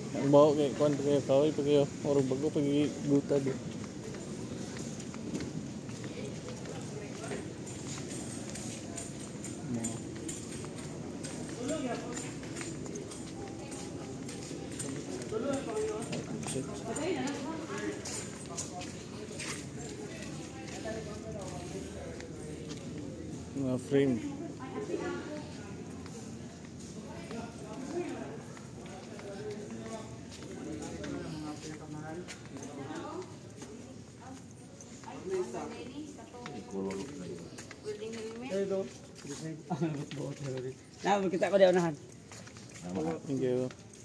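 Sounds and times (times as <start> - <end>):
indistinct background voices: 0.0 - 44.0
footsteps on concrete floor: 2.3 - 44.0.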